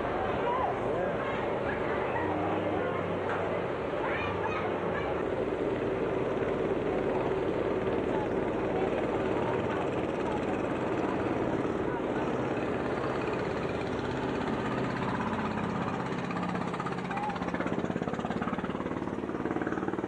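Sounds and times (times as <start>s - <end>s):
boat engine droning: 0.0s - 20.0s.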